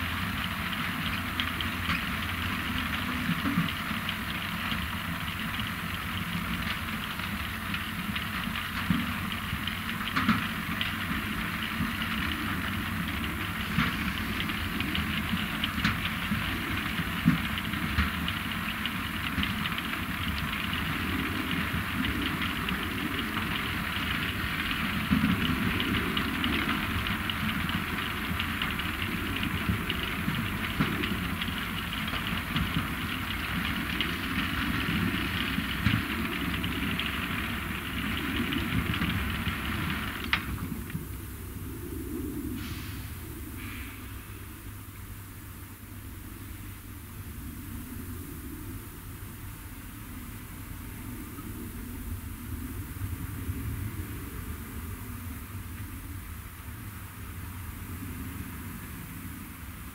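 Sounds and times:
beets rattling on conveyor: 0.0s - 40.6s
engine running steadily: 0.0s - 59.9s.

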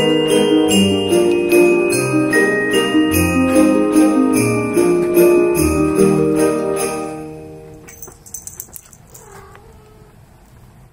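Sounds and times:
light clicks and rustles: 7.7s - 10.7s
kitten meowing quietly: 9.1s - 10.3s.

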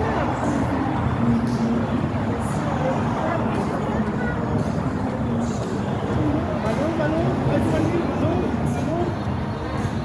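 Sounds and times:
faint voices: 0.0s - 10.0s
street traffic rumble: 0.0s - 10.0s.

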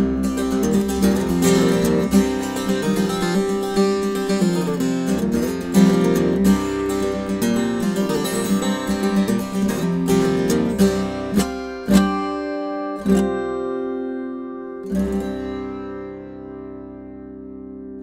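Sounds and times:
acoustic guitar played fingerstyle: 0.0s - 18.0s.

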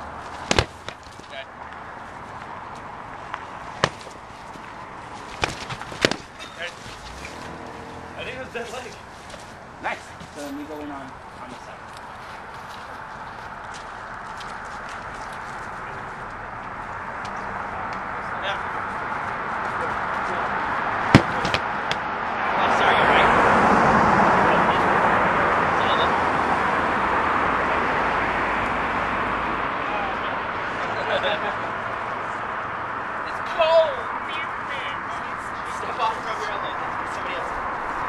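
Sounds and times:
broad rushing noise: 0.0s - 10.4s, 11.0s - 38.0s
sharp knock: 21.1s - 22.0s.

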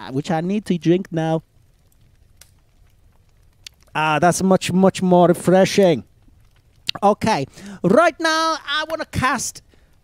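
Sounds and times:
small clicks: 1.7s - 4.0s
man sighing ah: 7.5s - 7.8s.

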